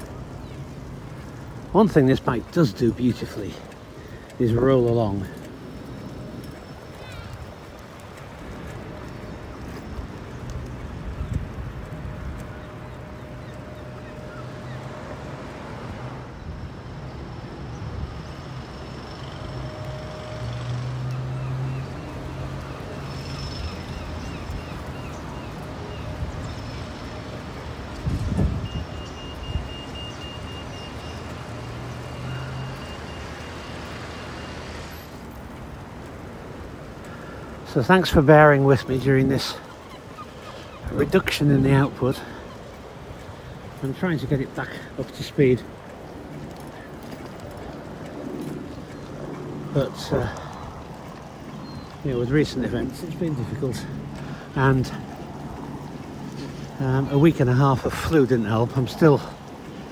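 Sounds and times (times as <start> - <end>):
rumble of passing vehicles: 0.0 - 59.9.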